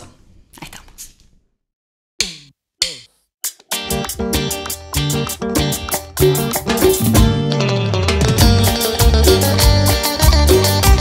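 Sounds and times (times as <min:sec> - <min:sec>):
short drum hits dropping in pitch: 0:06.7 - 0:07.6.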